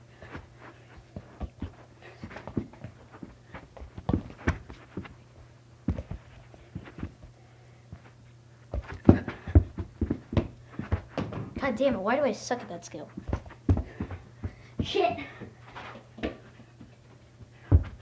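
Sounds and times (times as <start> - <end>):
ball kicked on carpet: 0.2 - 5.2, 5.8 - 7.3, 8.7 - 11.7, 13.2 - 15.0, 17.6 - 18.0
footfalls on carpet: 0.2 - 18.0.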